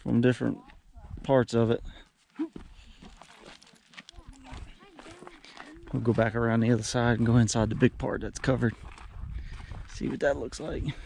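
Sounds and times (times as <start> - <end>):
footsteps on dirt trail: 0.0 - 11.0.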